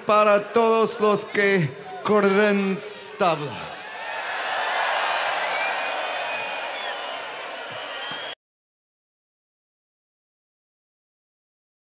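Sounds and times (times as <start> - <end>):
crowd cheering: 0.0 - 8.4
whistles from crowd: 4.6 - 8.4.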